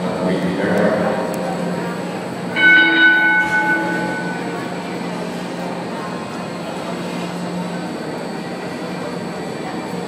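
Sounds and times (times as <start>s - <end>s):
steady low hum: 0.0s - 10.0s
bell ringing: 2.6s - 4.8s.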